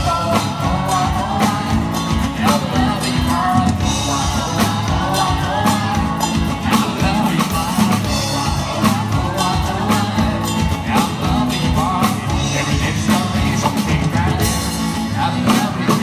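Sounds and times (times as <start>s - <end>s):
drum kit beat: 0.0s - 16.0s
live band dance music: 0.0s - 16.0s
person singing: 0.0s - 16.0s.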